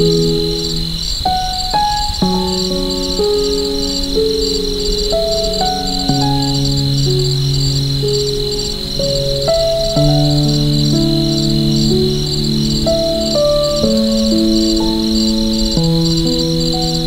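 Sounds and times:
crickets chirping: 0.0 - 17.0
slow piano music: 0.0 - 17.0.

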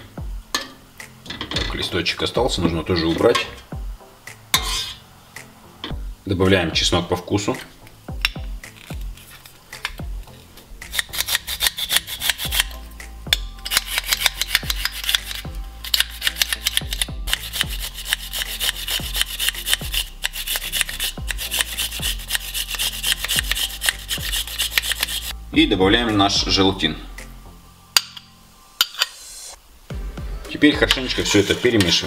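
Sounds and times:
garlic rasping on metal grater: 10.9 - 12.8, 13.7 - 25.3.

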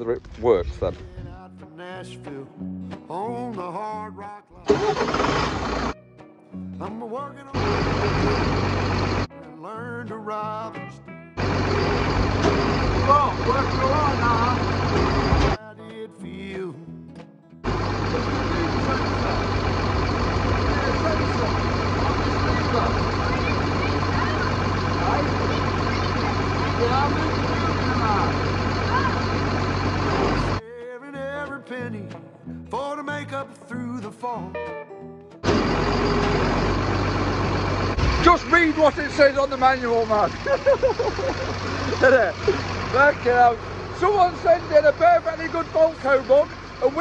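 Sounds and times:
music with singing voice: 1.0 - 5.0, 6.0 - 8.4, 9.3 - 11.4, 15.6 - 17.6, 30.6 - 35.4
lorry engine running: 4.7 - 6.0, 7.5 - 9.3, 11.4 - 15.6, 17.6 - 30.6, 35.4 - 47.0.

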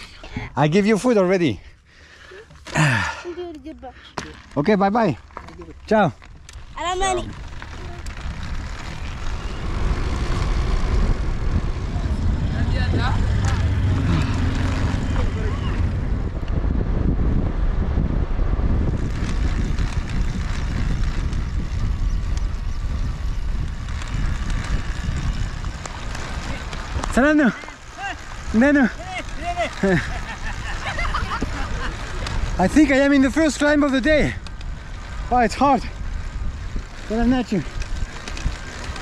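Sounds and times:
road noise: 0.0 - 39.0
wind rushing over microphone: 6.0 - 39.0.

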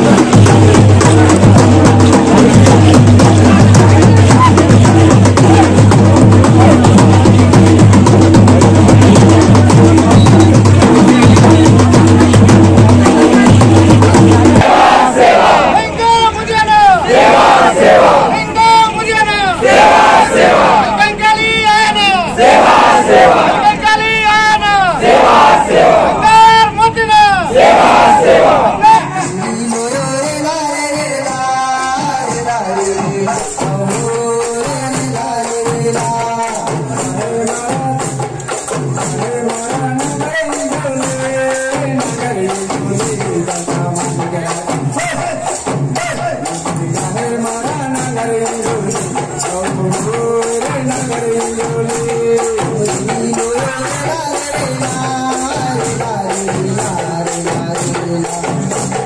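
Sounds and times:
drums beating fast: 0.0 - 59.0
group chanting cries: 14.6 - 16.0, 16.8 - 18.5, 19.6 - 21.0, 22.3 - 23.8, 24.7 - 26.4, 27.4 - 29.1.

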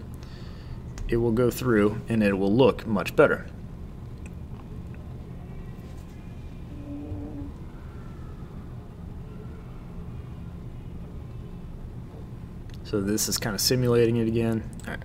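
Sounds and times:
low steady hum: 0.0 - 15.0
faint brief tones: 6.6 - 8.4.

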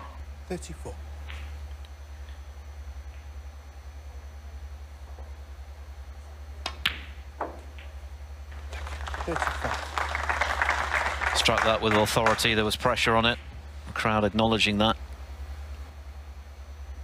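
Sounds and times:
steady low hum: 0.0 - 17.0
audience applause: 8.5 - 12.6.

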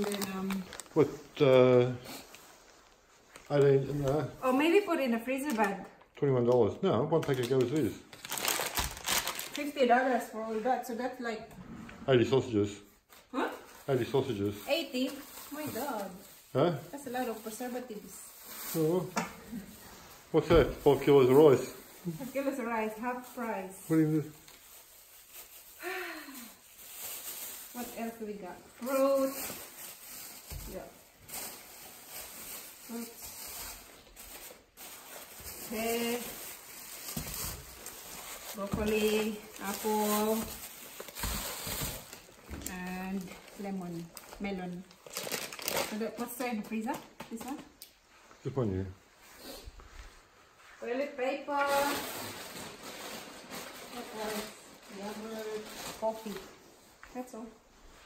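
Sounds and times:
faint plastic bag rustling: 0.0 - 6.0, 7.1 - 58.0
plastic packaging crinkling: 0.0 - 10.4, 13.4 - 47.6, 51.5 - 56.6
woman sighing: 25.8 - 26.5.

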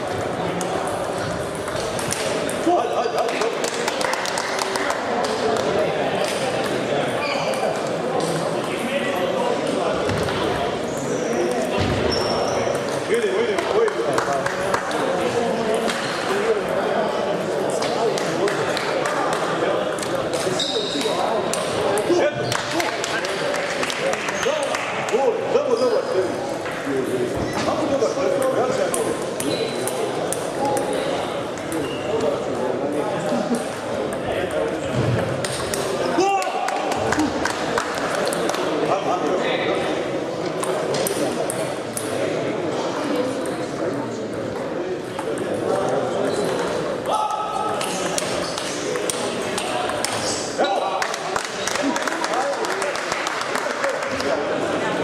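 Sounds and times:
indistinct chatter: 0.0 - 55.0.

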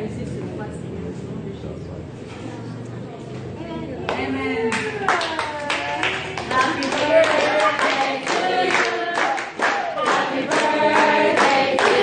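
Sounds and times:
group clapping in steady beat: 4.8 - 12.0
voices singing along: 5.9 - 12.0.

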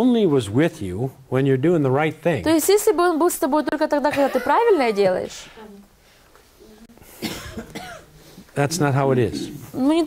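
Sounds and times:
person coughing: 7.2 - 8.1.

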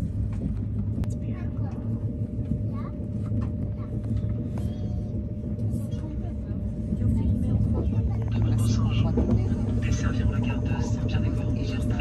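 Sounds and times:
train low rumble: 0.0 - 12.0
faint voices: 1.0 - 12.0.

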